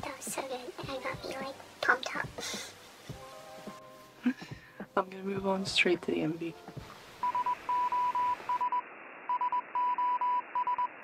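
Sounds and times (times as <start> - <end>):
short breathy hisses: 2.4 - 2.8.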